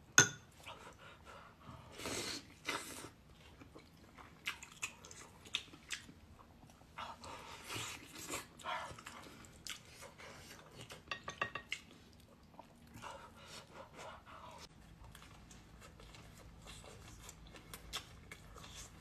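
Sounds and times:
person chewing meat: 0:02.4 - 0:19.0.

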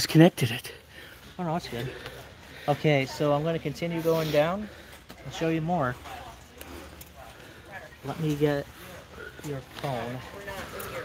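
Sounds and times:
faint chatter of shoppers: 0:00.0 - 0:11.0.

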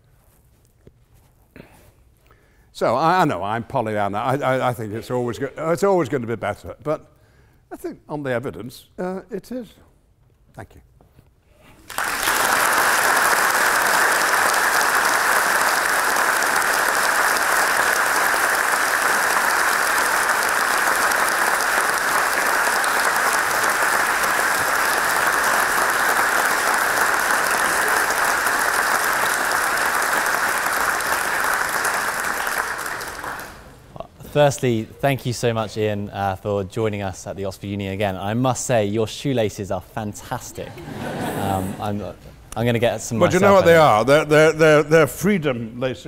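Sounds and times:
large audience applauding: 0:11.8 - 0:33.8.

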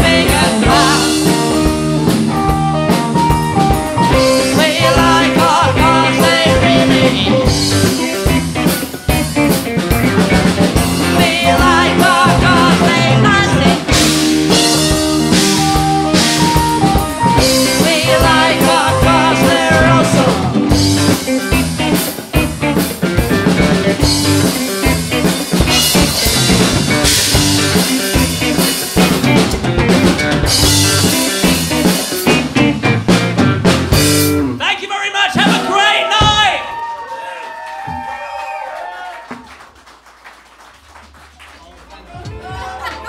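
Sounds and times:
rock band playing loud: 0:00.0 - 0:36.9, 0:42.0 - 0:43.0.

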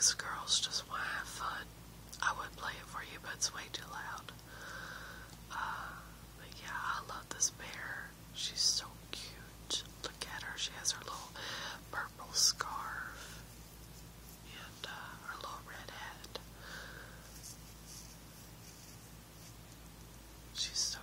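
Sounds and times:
person whispering: 0:00.0 - 0:04.4, 0:05.5 - 0:13.4, 0:14.4 - 0:16.5, 0:20.5 - 0:21.0.

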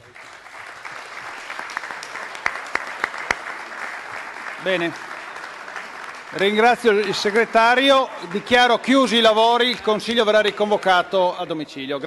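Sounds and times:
audience applause: 0:00.0 - 0:11.0.

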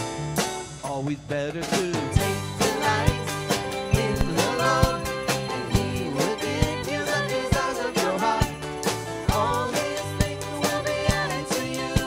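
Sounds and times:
acoustic guitar: 0:00.0 - 0:12.0
keyboard: 0:00.0 - 0:12.0
women singing: 0:02.3 - 0:12.0
sharp percussive strokes: 0:02.6 - 0:08.3.

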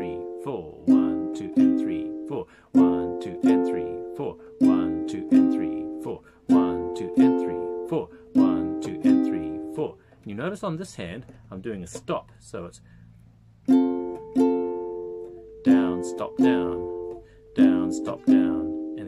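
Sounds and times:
classical guitar strumming: 0:00.0 - 0:09.9, 0:13.6 - 0:19.0.

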